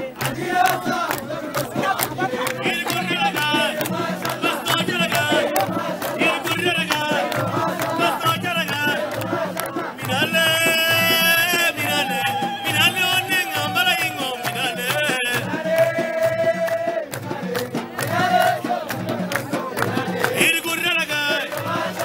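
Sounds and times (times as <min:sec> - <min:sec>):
crowd cheering: 0:00.0 - 0:22.0
steady drumbeat: 0:00.0 - 0:22.0
voices chanting and singing: 0:00.0 - 0:22.0.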